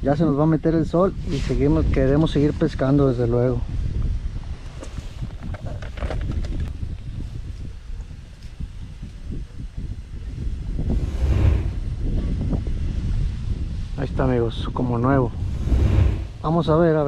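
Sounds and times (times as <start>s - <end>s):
wind buffeting microphone: 0.6s - 17.0s.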